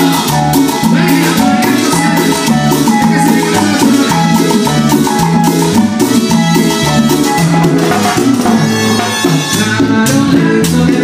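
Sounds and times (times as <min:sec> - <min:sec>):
bass line: 0:00.0 - 0:11.0
live band playing cumbia: 0:00.0 - 0:11.0.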